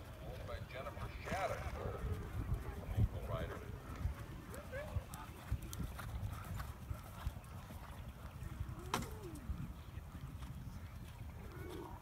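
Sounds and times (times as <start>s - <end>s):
horse hooves on sand: 0.0s - 12.0s.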